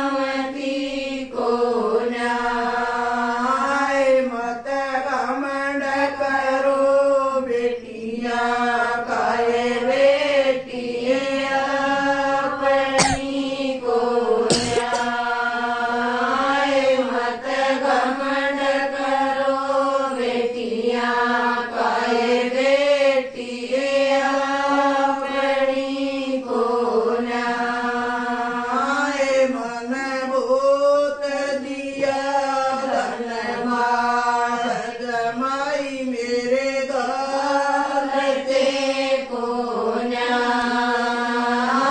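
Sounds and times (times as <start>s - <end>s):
women singing in unison: 0.0s - 41.9s.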